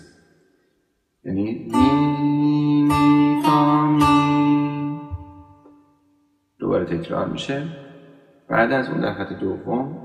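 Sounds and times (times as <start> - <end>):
plucked setar note ringing: 1.7 - 5.7.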